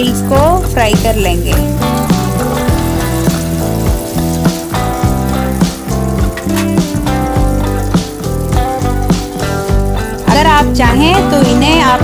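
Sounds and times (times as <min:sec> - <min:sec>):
background music with beat: 0:00.0 - 0:12.0
food deep-frying in oil: 0:00.0 - 0:12.0.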